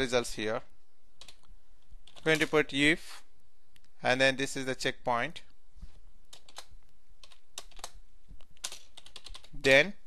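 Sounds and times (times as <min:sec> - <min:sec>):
keyboard typing: 0:01.2 - 0:02.6, 0:06.3 - 0:09.6.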